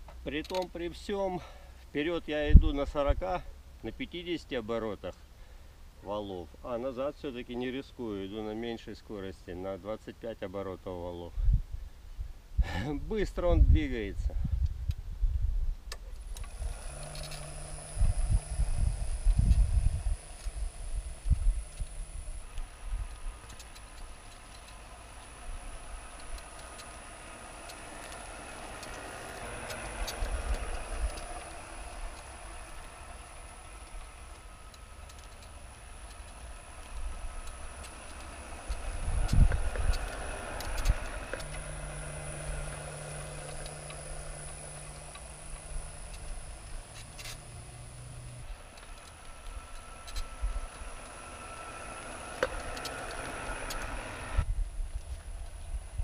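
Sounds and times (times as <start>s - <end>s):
low hum: 14.4s - 56.0s
electric motor whine: 16.2s - 54.5s.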